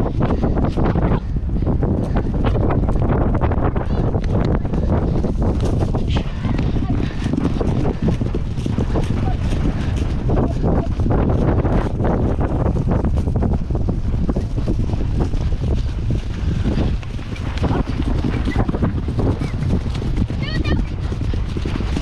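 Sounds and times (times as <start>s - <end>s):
pony hoofbeats on grass: 0.0s - 22.0s
wind buffeting microphone: 0.0s - 22.0s.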